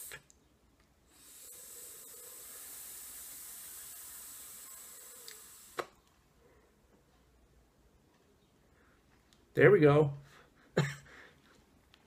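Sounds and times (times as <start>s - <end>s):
vape draw hissing: 0.0s - 0.3s, 1.1s - 6.0s.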